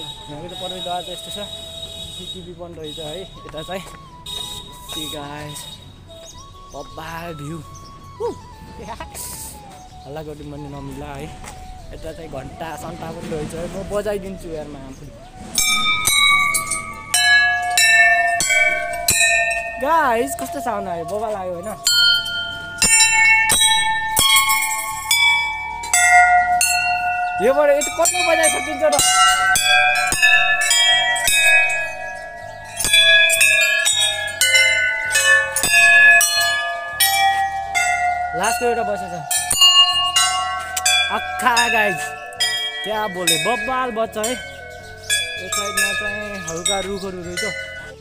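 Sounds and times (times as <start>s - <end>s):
brass bells struck by hand: 0.0s - 6.8s, 15.3s - 48.0s.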